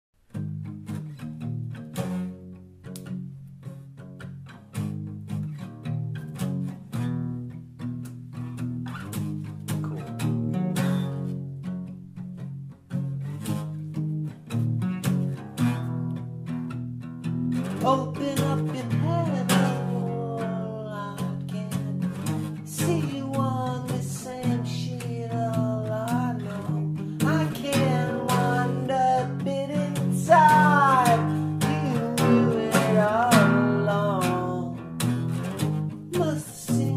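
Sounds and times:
solo guitar playing: 0.2 - 36.9
person singing: 17.8 - 35.1, 36.1 - 36.9.

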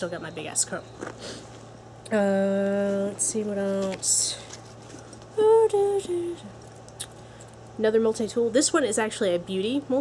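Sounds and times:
woman humming: 5.4 - 6.5.

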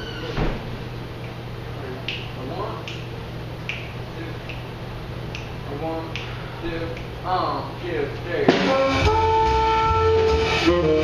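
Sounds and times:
finger snaps: 2.0 - 4.7, 5.3 - 7.1.

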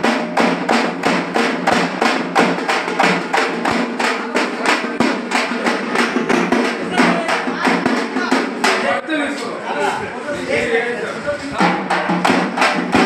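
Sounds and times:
drums beaten with sticks: 0.0 - 9.2, 11.5 - 13.0.

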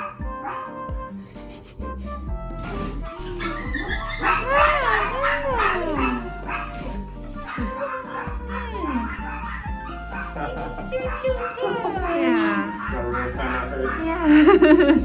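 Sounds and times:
background music: 0.0 - 15.0
puppy whining and yipping: 3.1 - 10.4
excited human voices: 3.3 - 6.3.

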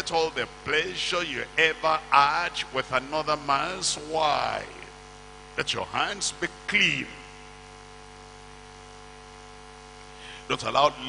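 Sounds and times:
man's voice: 0.0 - 4.9, 5.6 - 7.3, 10.4 - 11.0
electrical mains hum: 0.0 - 11.0
faint hiss: 9.0 - 11.0.

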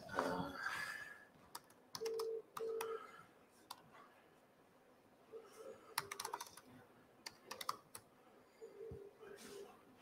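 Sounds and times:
laptop keyboard typing: 1.5 - 3.0, 5.9 - 8.1.

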